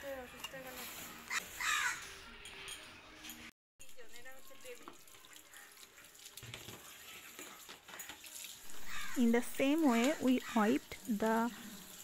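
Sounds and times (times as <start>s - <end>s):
crow cawing: 1.3s - 2.2s, 8.7s - 9.3s.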